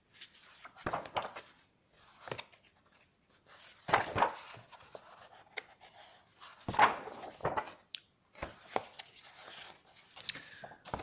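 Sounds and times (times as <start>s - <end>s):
paper pages rustling: 0.0s - 11.0s
pages slapping and tapping: 0.6s - 1.5s, 3.8s - 6.0s, 6.6s - 11.0s.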